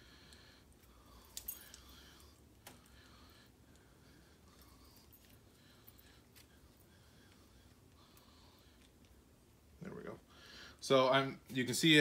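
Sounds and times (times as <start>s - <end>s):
faint clicks of metal lock parts: 0.8s - 1.9s.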